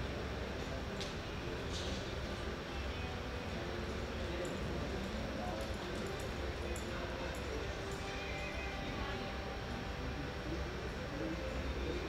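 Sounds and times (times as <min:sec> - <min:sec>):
murmur of distant voices: 0:00.0 - 0:12.0.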